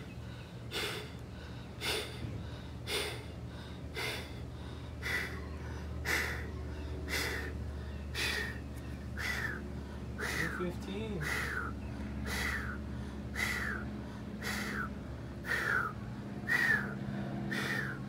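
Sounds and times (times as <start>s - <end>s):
man breathing hard: 0.0s - 18.0s.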